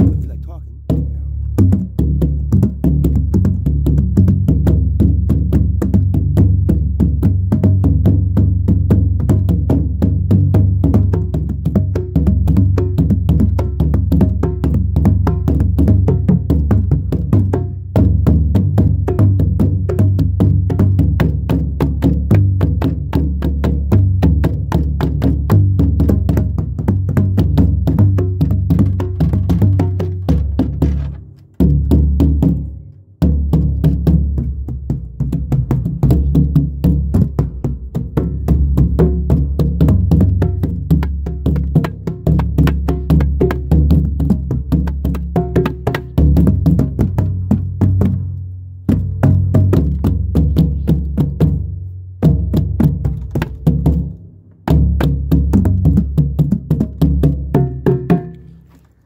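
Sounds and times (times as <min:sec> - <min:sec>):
drum played in fast strokes: 0:00.0 - 0:58.8.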